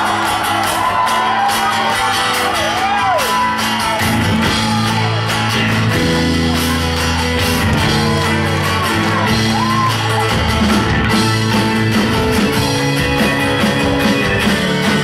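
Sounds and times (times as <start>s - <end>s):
crowd whooping and shouting: 0.0s - 15.0s
live rock band: 0.0s - 15.0s.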